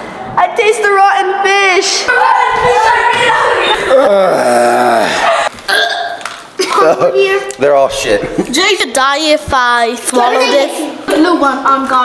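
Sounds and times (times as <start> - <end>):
voices: 0.5 - 5.5
man gagging and retching: 3.9 - 6.2.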